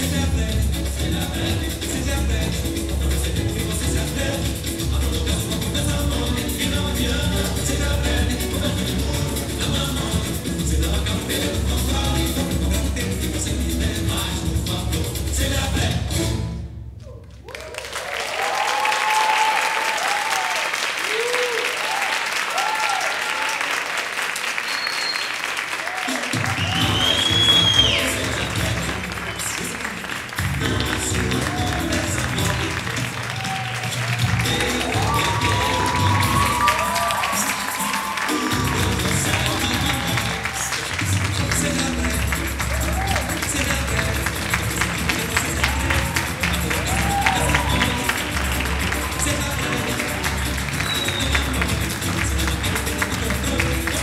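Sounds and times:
rhythmic music: 0.0s - 17.0s, 26.1s - 54.0s
samba music: 0.0s - 17.4s, 25.8s - 54.0s
cheering shouts: 17.0s - 30.1s, 31.2s - 41.2s, 42.6s - 43.5s, 45.2s - 51.5s
audience applause: 17.0s - 54.0s.

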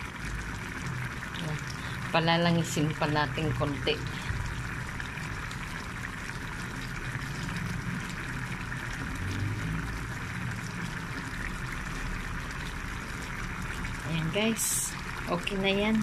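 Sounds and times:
stew bubbling in a pan: 0.0s - 16.0s.

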